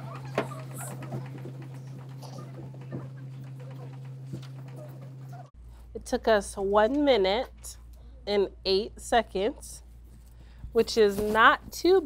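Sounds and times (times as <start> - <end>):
steady low hum: 0.0 - 12.0
faint shuffling: 9.8 - 12.0.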